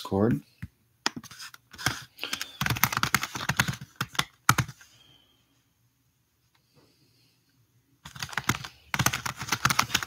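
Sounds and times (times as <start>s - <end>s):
computer keyboard typing: 1.7s - 4.8s, 8.0s - 10.0s.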